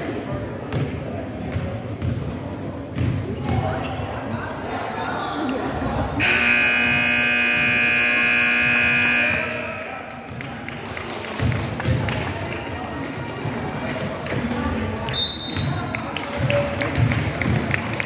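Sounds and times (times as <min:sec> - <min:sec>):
basketball bouncing on wooden court: 0:00.6 - 0:03.7, 0:15.5 - 0:17.8
scoreboard horn blast: 0:06.2 - 0:09.7.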